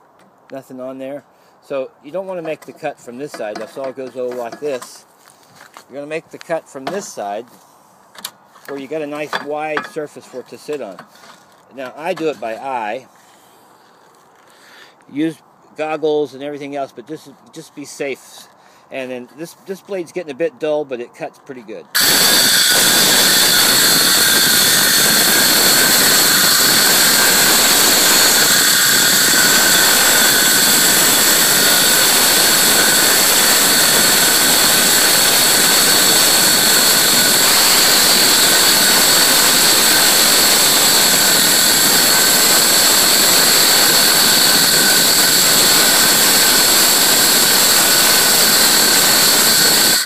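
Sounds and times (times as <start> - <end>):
circular saw cutting wood: 2.2 - 5.0, 21.9 - 50.0.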